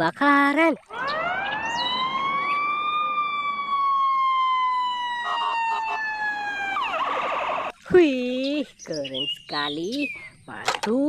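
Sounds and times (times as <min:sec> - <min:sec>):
emergency siren wailing: 0:00.9 - 0:07.7.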